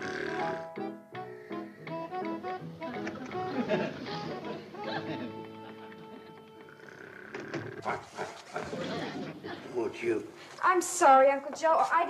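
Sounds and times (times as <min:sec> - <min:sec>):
man snoring and snorting: 0:00.0 - 0:01.9, 0:06.7 - 0:08.1.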